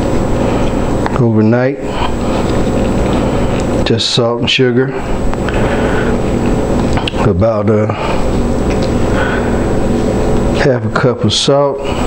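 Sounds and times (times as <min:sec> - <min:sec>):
faint high whine: 0:00.0 - 0:12.0
mechanical hum with hiss: 0:00.0 - 0:12.0.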